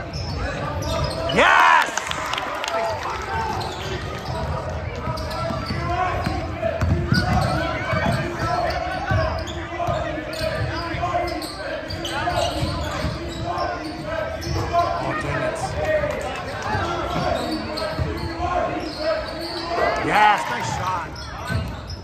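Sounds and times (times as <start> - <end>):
background chatter of voices: 0.0 - 22.0.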